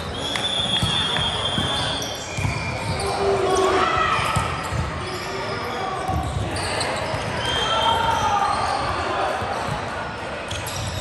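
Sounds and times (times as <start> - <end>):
sneakers squeaking on hardwood: 0.0 - 9.9, 10.5 - 11.0.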